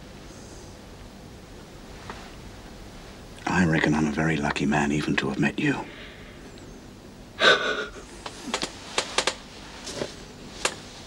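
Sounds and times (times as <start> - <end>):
person gasping: 7.4 - 8.1.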